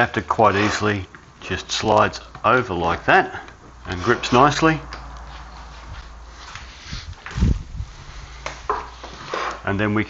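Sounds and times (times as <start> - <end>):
steady low hum: 0.0 - 9.3.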